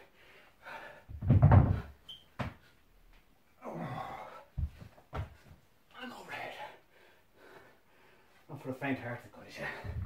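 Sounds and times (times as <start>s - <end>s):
thuds on wooden floor: 1.1s - 2.6s.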